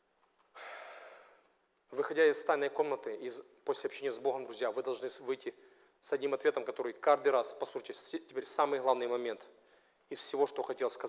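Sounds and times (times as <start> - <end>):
man breathing: 0.5 - 1.4.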